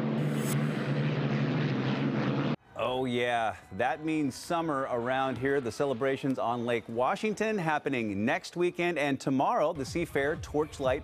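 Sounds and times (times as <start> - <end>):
racing boat engines roaring: 0.0 - 2.6.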